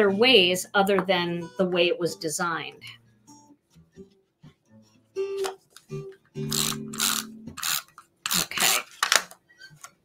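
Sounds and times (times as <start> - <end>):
background music: 0.0 - 8.5.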